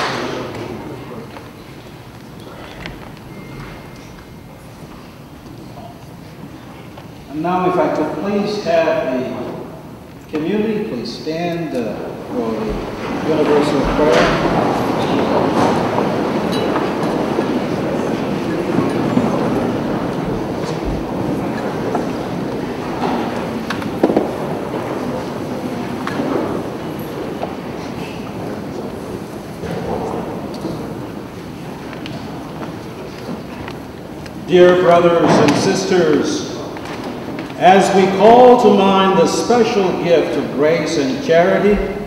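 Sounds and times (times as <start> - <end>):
congregation crowd hubbub: 0.0 - 42.0.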